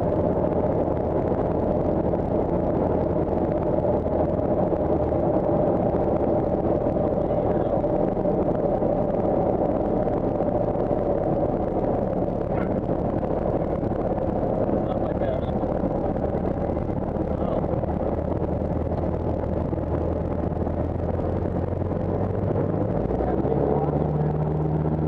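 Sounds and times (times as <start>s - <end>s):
airplane engine and propeller running: 0.0s - 25.0s.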